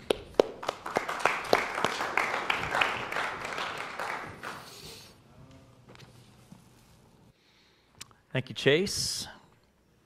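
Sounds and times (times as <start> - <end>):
congregation applauding: 0.0 - 5.0.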